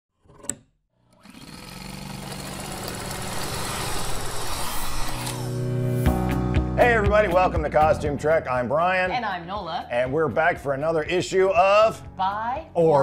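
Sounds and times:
rising rushing noise: 2.5s - 6.5s.

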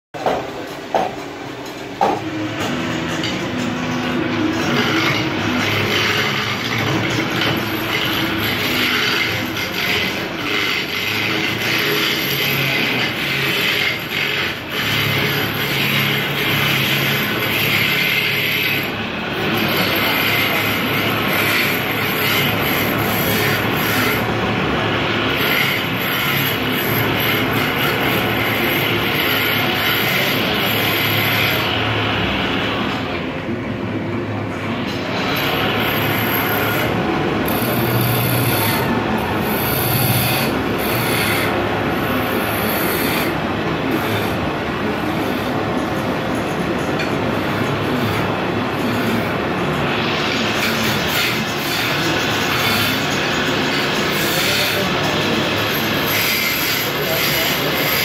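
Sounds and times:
chisel scraping wood on lathe: 2.0s - 33.0s, 34.7s - 58.0s.

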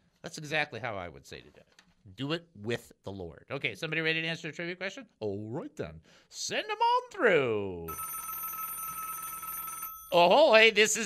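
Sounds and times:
telephone tone: 7.9s - 10.3s.

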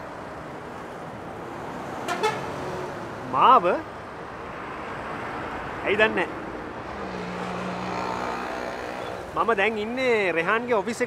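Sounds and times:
bus engine hum: 0.0s - 5.8s
road traffic noise: 0.0s - 11.0s.

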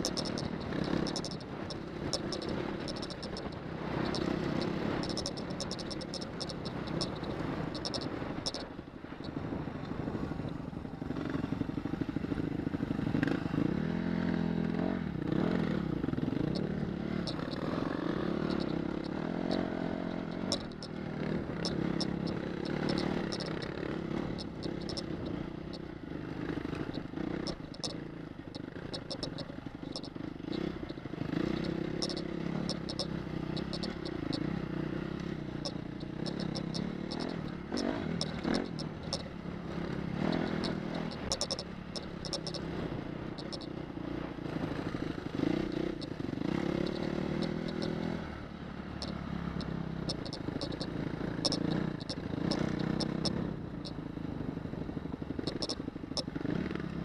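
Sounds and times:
motorcycle engine revving: 0.0s - 57.0s.

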